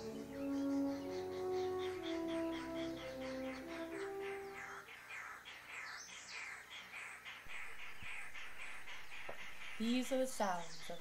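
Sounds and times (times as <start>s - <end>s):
film music: 0.0s - 4.9s
bird chirping rapidly: 0.0s - 11.0s
faint bird calls: 0.0s - 11.0s.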